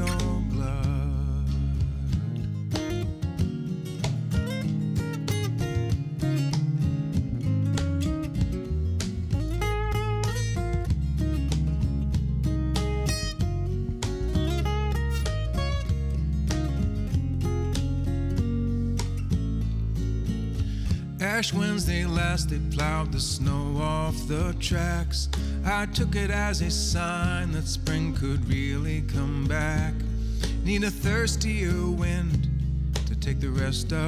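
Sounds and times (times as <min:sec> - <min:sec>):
acoustic guitar playing: 0:00.0 - 0:34.0
electric bass: 0:00.0 - 0:34.0
cajon drumming: 0:01.8 - 0:23.8, 0:24.7 - 0:33.8.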